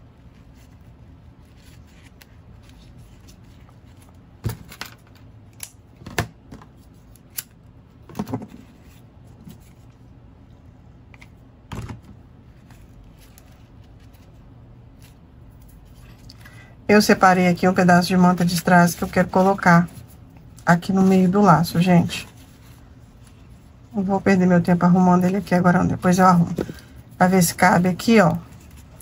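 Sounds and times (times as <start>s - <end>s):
ribbon rustling: 0.1s - 4.5s, 6.7s - 11.5s, 12.1s - 16.5s, 17.6s - 24.0s, 24.7s - 29.0s.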